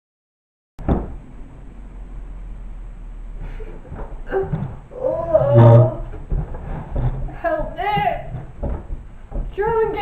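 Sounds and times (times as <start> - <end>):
woman's gravelly roar-like vocal: 4.3 - 6.0.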